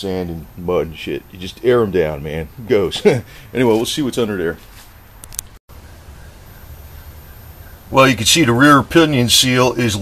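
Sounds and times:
man speaking: 0.0 - 4.7, 7.9 - 10.0.

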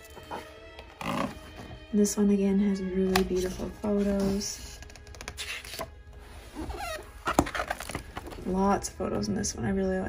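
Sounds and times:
book pages being turned: 0.0 - 1.8, 3.1 - 8.6.

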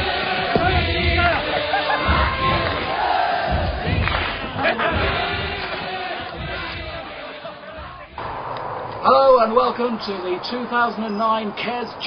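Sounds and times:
music: 0.0 - 8.2
crowd shouting and cheering: 0.0 - 8.4.

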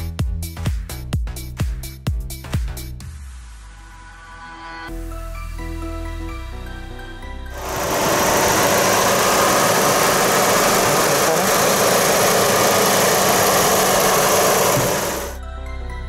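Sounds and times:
car engine running: 7.6 - 15.4.

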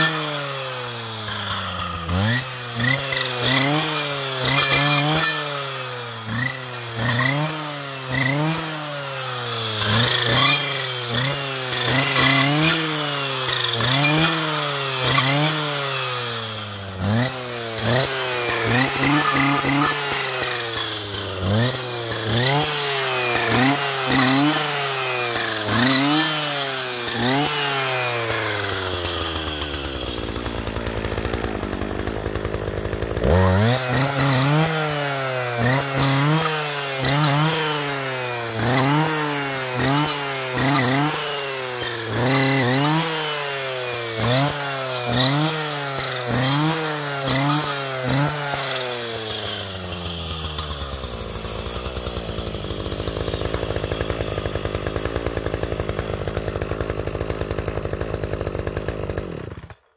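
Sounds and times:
blade cutting brushwood: 0.0 - 59.9
brushcutter engine revving: 0.0 - 59.9.

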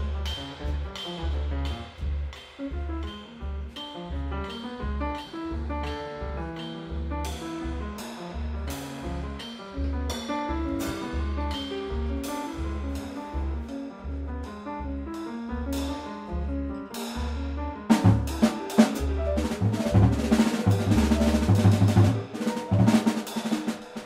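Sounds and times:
double bass notes: 0.0 - 23.8
acoustic piano: 2.6 - 24.0
drummer playing cymbal: 17.9 - 24.0
loud drum hits: 17.9 - 24.0.

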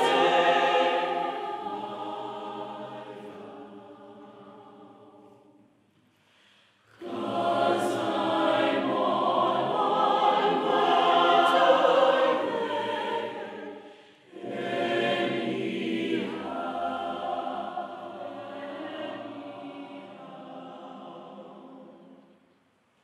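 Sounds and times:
choir singing long held notes: 0.0 - 5.8, 6.7 - 22.5.

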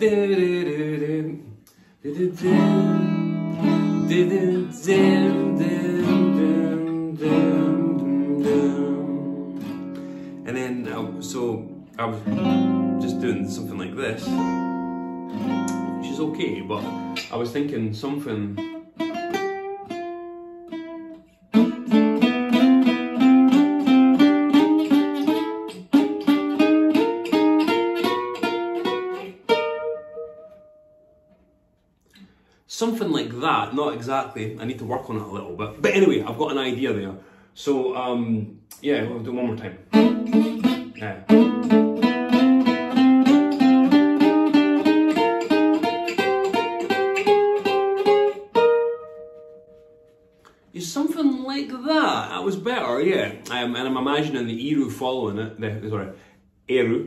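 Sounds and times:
fingerstyle acoustic guitar: 0.0 - 32.5, 39.0 - 53.5.

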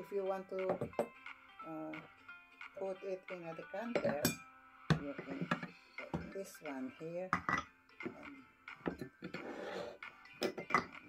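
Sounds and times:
glass scraping: 8.9 - 10.9.

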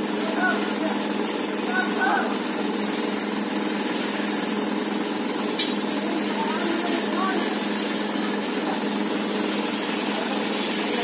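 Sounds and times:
steady motor drone: 0.0 - 11.0.

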